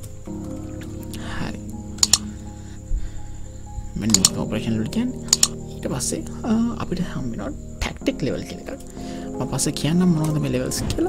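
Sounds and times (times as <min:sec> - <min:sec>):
person speaking: 0:03.9 - 0:11.0.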